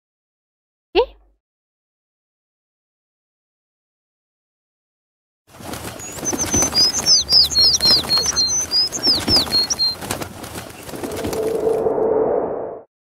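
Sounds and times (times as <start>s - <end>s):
light clicks and flutters: 5.5s - 11.8s
cartoon bird chirps and tweets: 6.0s - 10.0s
whoosh: 11.0s - 12.9s.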